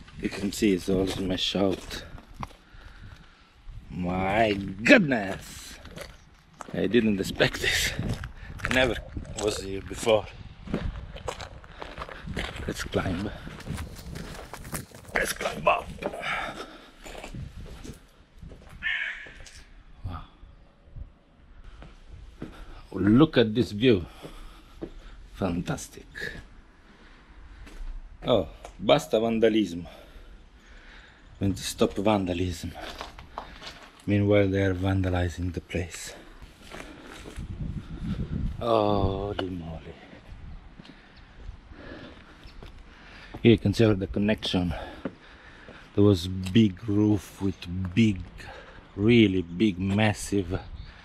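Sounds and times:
footsteps on gritty concrete: 0.0 - 19.6, 21.7 - 26.6, 27.5 - 28.9, 31.8 - 50.6
harsh caw-like calls: 18.8 - 19.9.

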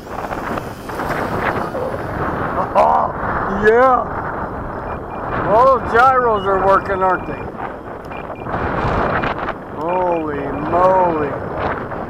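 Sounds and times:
strong wind on microphone: 0.0 - 12.0.

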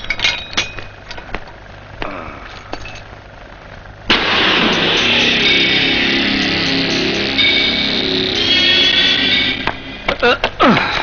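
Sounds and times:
low steady hum: 0.0 - 11.0
dramatic background music: 4.1 - 10.1
loud crash: 4.1 - 10.2.

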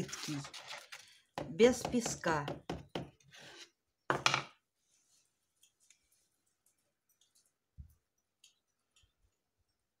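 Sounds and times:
small clicks and rustles: 5.5 - 9.9.

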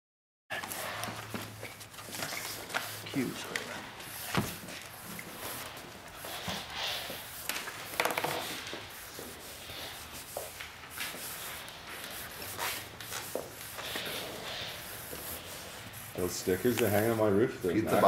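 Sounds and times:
marker scratching on cardboard: 2.0 - 18.0.

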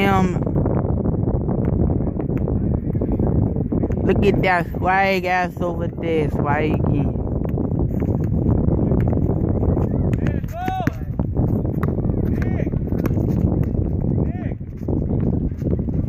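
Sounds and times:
wind rumble on microphone: 0.0 - 16.0
basketball bouncing on asphalt: 1.6 - 2.7, 3.8 - 4.3, 7.4 - 16.0.

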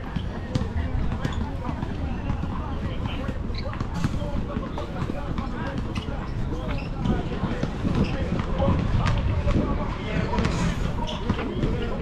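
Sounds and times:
indistinct voices: 5.9 - 12.0
low rumble: 8.6 - 11.0.

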